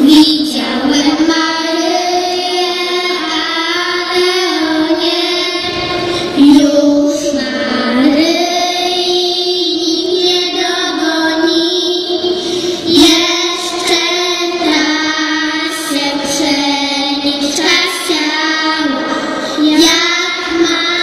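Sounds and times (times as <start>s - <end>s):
girls singing a carol: 0.0s - 21.0s.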